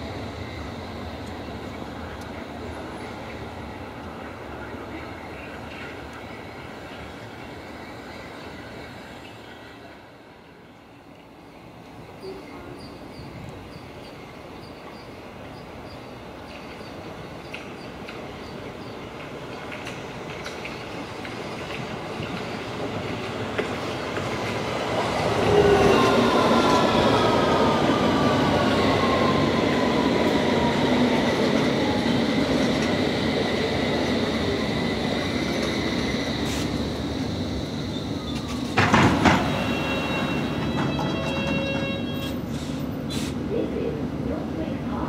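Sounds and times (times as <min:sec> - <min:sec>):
train wheels rumbling: 0:12.2 - 0:45.0
electric train braking: 0:35.0 - 0:43.4.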